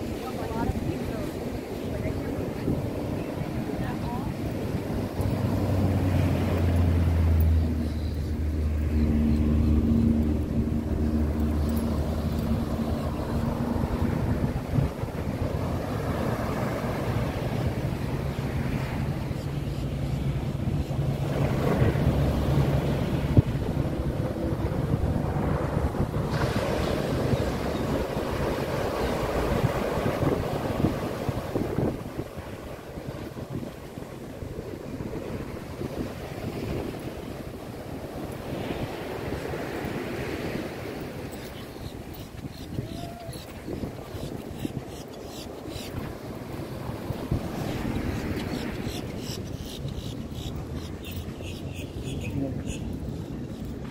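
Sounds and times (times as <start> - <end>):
ocean surf breaking: 0.0 - 53.9
wind buffeting microphone: 0.0 - 53.9.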